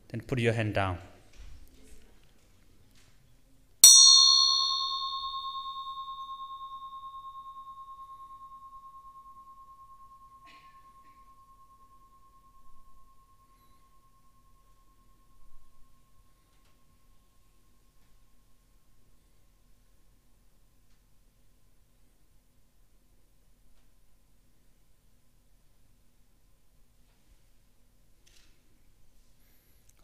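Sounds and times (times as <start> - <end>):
metal meditation bell ringing: 3.8 - 18.6.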